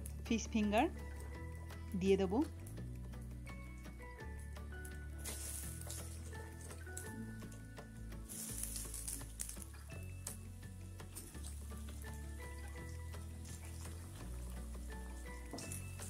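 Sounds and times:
fish deep-frying in oil sizzling: 0:04.8 - 0:16.0.

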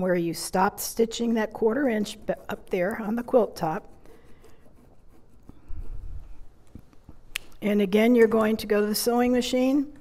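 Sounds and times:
pen scratching on fabric: 0:01.1 - 0:06.5.

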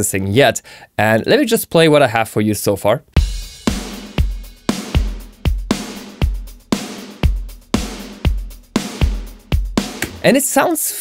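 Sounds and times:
dry kick drum: 0:03.2 - 0:10.2
reverberant snare drum: 0:03.2 - 0:10.3.

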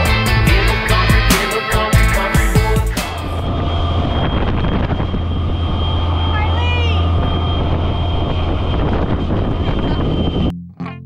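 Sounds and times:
swamp buggy engine drone: 0:00.0 - 0:10.5
wind on microphone: 0:02.6 - 0:10.5.

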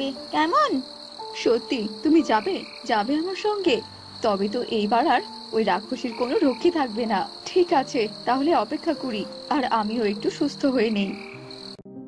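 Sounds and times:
cricket trill: 0:00.0 - 0:11.8
frogs croaking: 0:00.0 - 0:11.8
soft music: 0:00.0 - 0:12.0.

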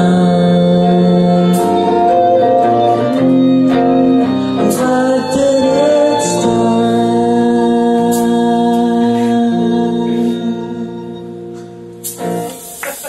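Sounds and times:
violin bowing sustained notes: 0:00.0 - 0:11.5
guitar playing: 0:00.0 - 0:13.0.

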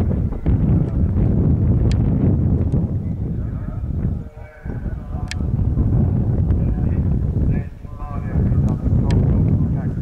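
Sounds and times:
wind buffeting microphone: 0:00.0 - 0:10.0
sharp click: 0:05.2 - 0:05.4.

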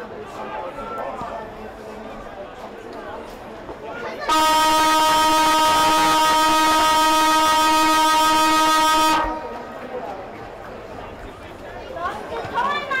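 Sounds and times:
siren horn-like blast: 0:04.3 - 0:09.5.

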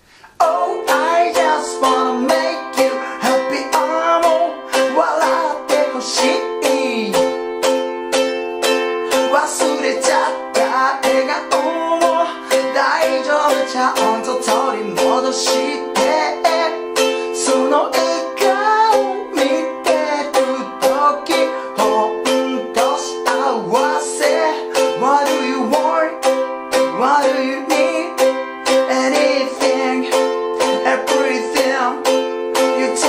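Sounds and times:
ukulele strumming: 0:00.0 - 0:33.0
man singing: 0:00.3 - 0:07.8, 0:08.9 - 0:33.0.

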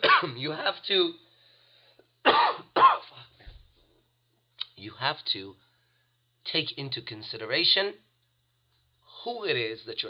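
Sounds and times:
man coughing: 0:00.0 - 0:00.6, 0:02.2 - 0:03.3.

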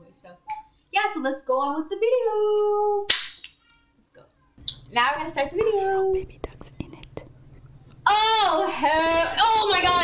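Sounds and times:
quiet mouth sounds: 0:05.8 - 0:08.0.

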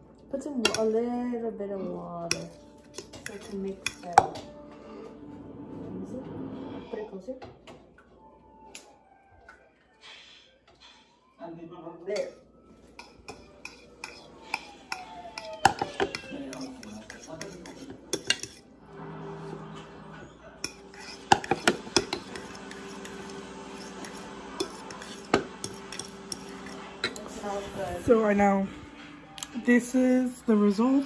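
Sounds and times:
metal utensil scraping a bowl: 0:02.2 - 0:05.1, 0:12.1 - 0:27.9.

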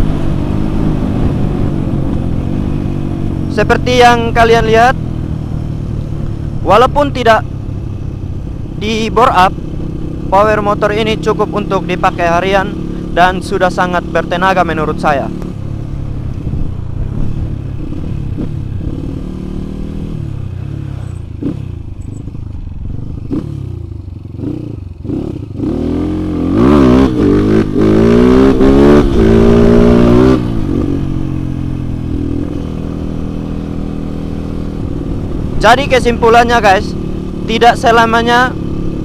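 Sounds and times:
motorcycle engine revving: 0:00.0 - 0:39.0.

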